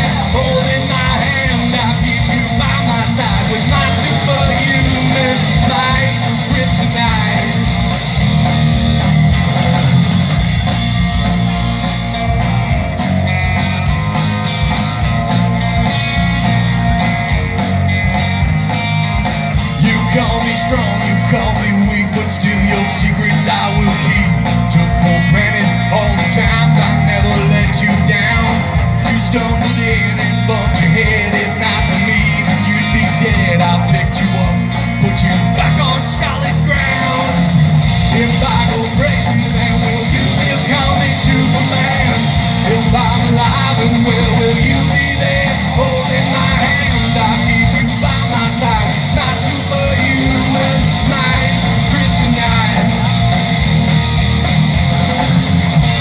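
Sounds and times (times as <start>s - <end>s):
live rock band: 0.0s - 56.0s.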